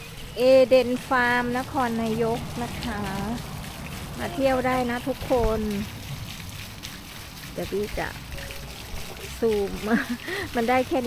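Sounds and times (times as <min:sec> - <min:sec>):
fountain water splashing: 0:00.0 - 0:11.0
woman speaking: 0:00.4 - 0:03.4, 0:04.2 - 0:05.9, 0:07.6 - 0:08.2, 0:09.2 - 0:11.0.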